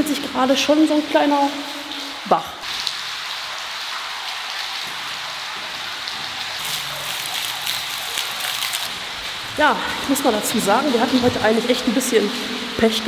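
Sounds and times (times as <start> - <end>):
water rushing over brick floor: 0.0 - 13.0.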